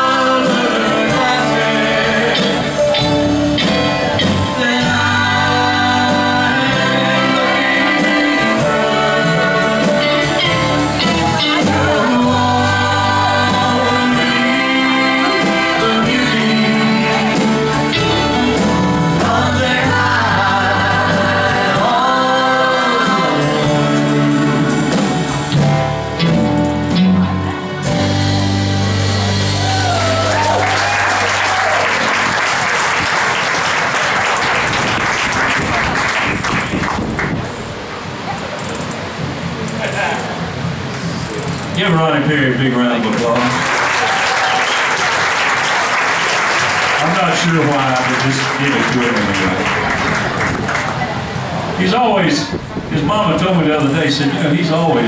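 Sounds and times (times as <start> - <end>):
live band playing: 0.0 - 55.0
audience applauding: 29.3 - 37.6, 43.0 - 51.8.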